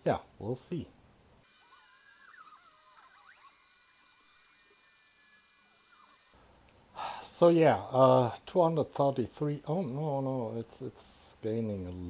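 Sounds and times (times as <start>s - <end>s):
faint high warbling chirps: 1.8s - 3.7s.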